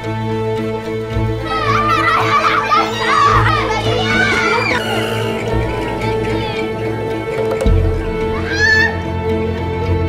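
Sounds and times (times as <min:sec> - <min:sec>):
steady music score: 0:00.0 - 0:10.0.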